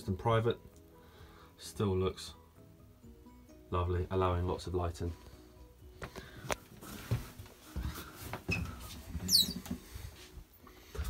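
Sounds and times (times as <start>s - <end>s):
knocks and rustles of handling: 6.0s - 11.0s
high squeak falling in pitch: 9.3s - 9.6s.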